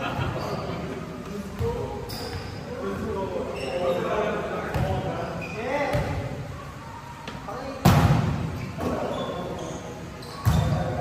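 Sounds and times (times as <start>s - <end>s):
volleyball bouncing on gym floor: 4.7s - 5.0s, 5.8s - 6.3s, 7.8s - 9.0s, 10.4s - 11.0s.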